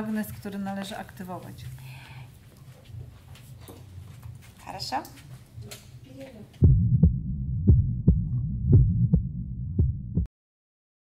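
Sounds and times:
heartbeat-like double thumps: 6.6s - 10.3s
low hum: 6.6s - 10.3s.

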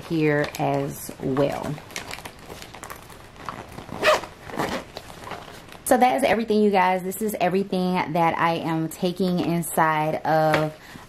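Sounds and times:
bags being handled: 0.0s - 5.9s
metal zipper being pulled: 2.5s - 5.7s.

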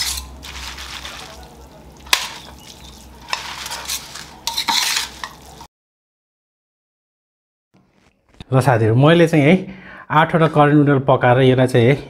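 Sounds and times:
fork clinking on metal bowl: 0.0s - 5.6s
fork stirring wet noodles: 0.0s - 5.7s.

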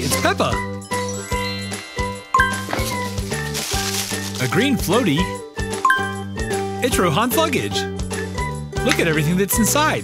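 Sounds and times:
children's background music: 0.0s - 10.0s
tinkling chime: 0.9s - 3.5s.

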